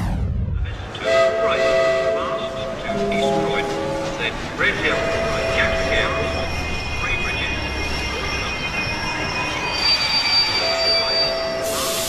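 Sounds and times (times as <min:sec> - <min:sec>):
falling whoosh with low rumble: 0:00.0 - 0:01.0
music: 0:00.0 - 0:11.8
train whistle sound effect: 0:01.0 - 0:04.2.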